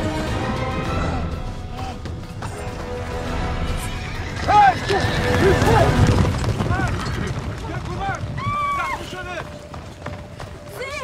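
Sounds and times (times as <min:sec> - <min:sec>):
horses neighing: 0:03.4 - 0:10.3
hooves galloping on dirt: 0:04.0 - 0:11.0.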